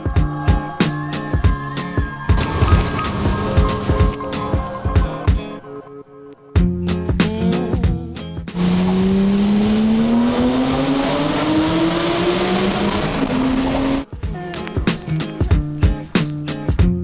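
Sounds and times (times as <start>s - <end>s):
music: 0.0s - 8.9s, 11.2s - 17.0s
car engine accelerating: 2.4s - 5.2s, 8.5s - 14.1s.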